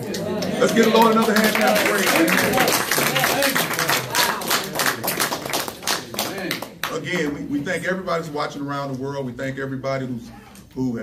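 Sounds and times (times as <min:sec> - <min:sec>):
crowd clapping: 0:00.0 - 0:07.4.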